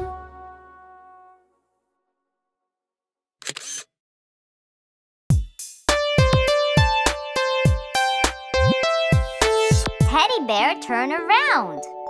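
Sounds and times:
camera shutter snap: 0:03.4 - 0:03.9.

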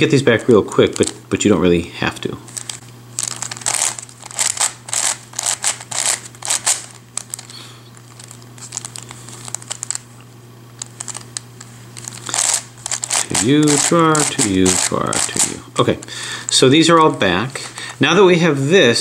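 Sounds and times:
puzzle cube clicking: 0:12.0 - 0:15.6.

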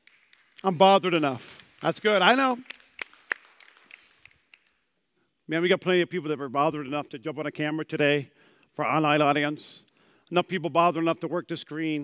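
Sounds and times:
hand claps: 0:00.0 - 0:04.8.

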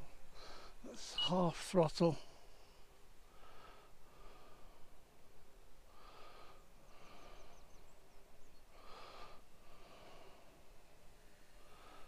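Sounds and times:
soft breathing: 0:00.0 - 0:01.0, 0:02.2 - 0:12.0
faint high chirps: 0:00.9 - 0:01.8.

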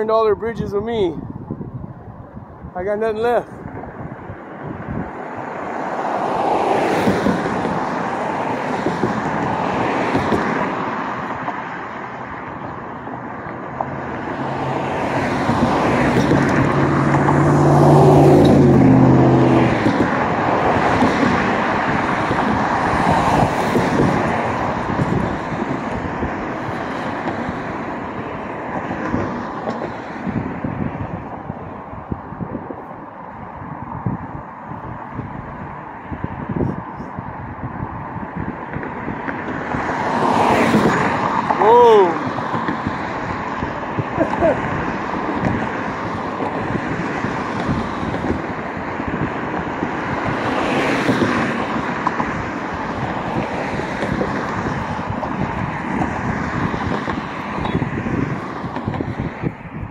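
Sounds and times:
cars passing: 0:00.0 - 0:59.9.

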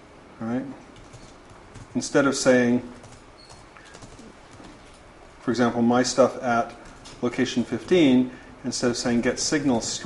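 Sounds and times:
low room noise: 0:00.0 - 0:10.0
laptop keyboard typing: 0:00.8 - 0:05.1, 0:06.7 - 0:08.1.

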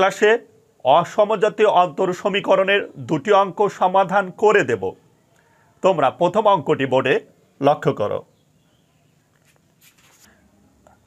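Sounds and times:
faint scratchy sounds: 0:00.0 - 0:11.0.

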